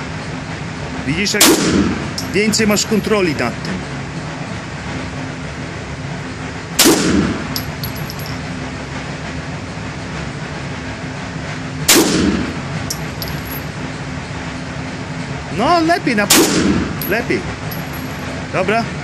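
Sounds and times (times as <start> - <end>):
pistol shots with echo: 1.4 - 2.0, 6.8 - 7.4, 11.9 - 12.4, 16.3 - 16.8.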